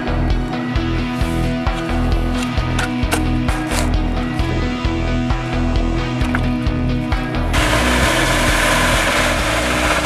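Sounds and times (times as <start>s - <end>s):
background music: 0.0s - 10.0s
vacuum hose sucking liquid: 7.5s - 10.0s.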